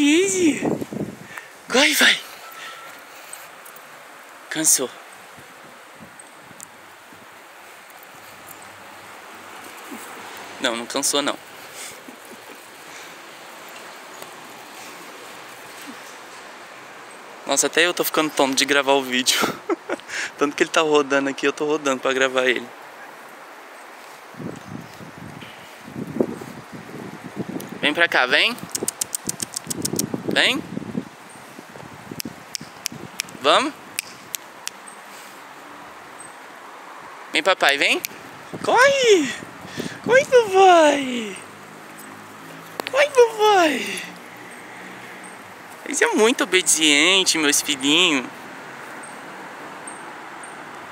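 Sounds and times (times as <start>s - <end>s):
faint outdoor background noise: 0.0s - 50.9s
wind-like background hiss: 0.0s - 50.9s
light sharp clicks: 28.6s - 30.2s, 32.2s - 33.4s, 34.0s - 35.0s, 42.0s - 42.9s.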